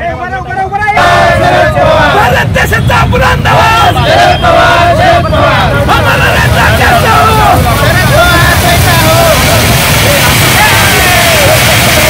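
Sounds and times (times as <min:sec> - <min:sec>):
men chanting and shouting: 0:00.0 - 0:12.0
heavy low rumble: 0:01.0 - 0:12.0
firecrackers hissing: 0:05.0 - 0:12.0.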